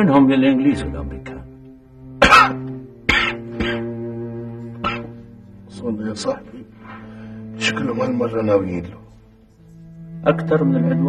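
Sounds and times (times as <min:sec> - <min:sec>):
soft background music: 0:00.0 - 0:11.0
man coughing: 0:02.2 - 0:04.0, 0:04.8 - 0:05.2.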